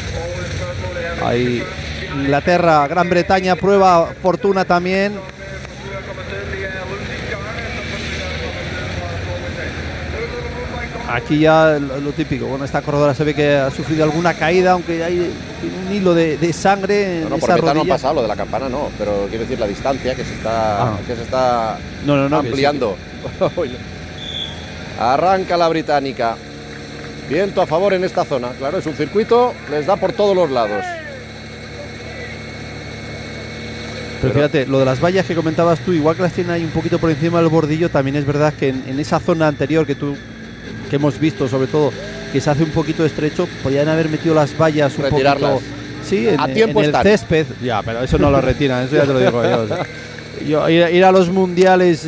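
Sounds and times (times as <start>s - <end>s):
low vehicle hum: 0.0s - 52.0s
wind and road noise: 32.4s - 52.0s.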